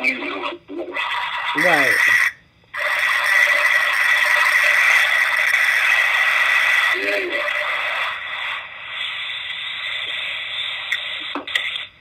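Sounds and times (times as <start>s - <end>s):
steady hiss: 0.0s - 12.0s
thin high whine: 0.0s - 12.0s.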